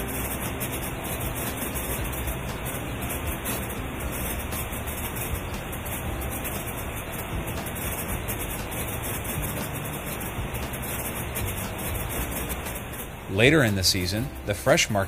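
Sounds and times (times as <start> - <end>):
conveyor belts rumbling and hissing: 0.0 - 15.0.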